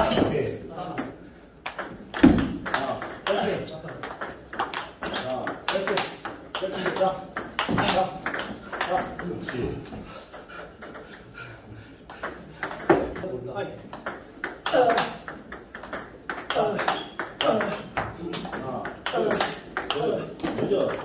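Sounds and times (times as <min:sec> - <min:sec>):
balls bouncing on table: 0:00.0 - 0:10.0, 0:10.6 - 0:11.3, 0:12.1 - 0:21.0
table tennis balls hitting paddles: 0:00.0 - 0:11.4, 0:12.0 - 0:21.0.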